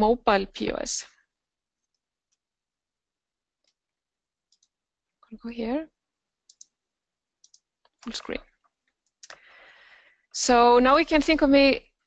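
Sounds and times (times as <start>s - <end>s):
computer mouse clicks: 1.8s - 2.5s, 3.6s - 3.9s, 4.5s - 4.8s, 6.4s - 6.8s, 7.4s - 9.4s.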